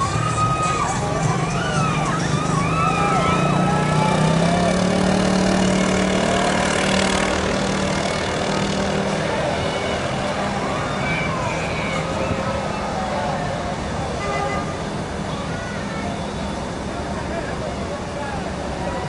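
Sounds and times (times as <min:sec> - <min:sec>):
cars and trucks rolling past: 0:00.0 - 0:19.0
voices: 0:00.0 - 0:19.0.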